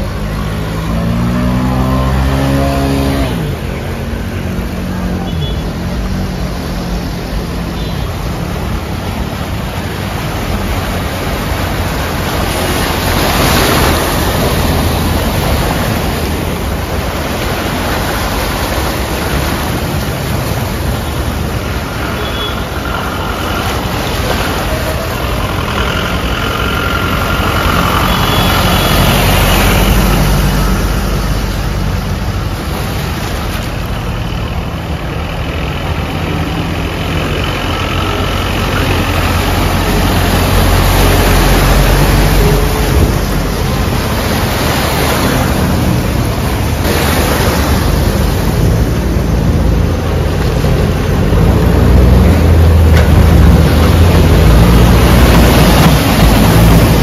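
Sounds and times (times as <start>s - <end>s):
vehicle engines running low: 0.0s - 57.0s
water splashing from wheels: 0.0s - 57.0s.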